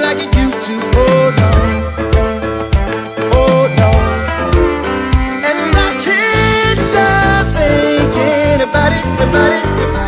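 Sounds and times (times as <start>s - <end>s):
song with steady drum beat: 0.0s - 10.0s.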